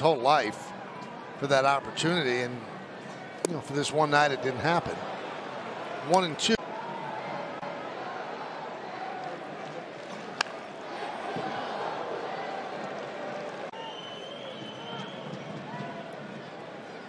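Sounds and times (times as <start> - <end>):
bat cracking on ball: 10.1 - 10.6.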